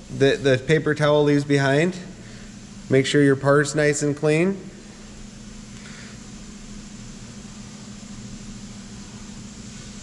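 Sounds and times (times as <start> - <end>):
machine hum with hiss: 0.0 - 10.0.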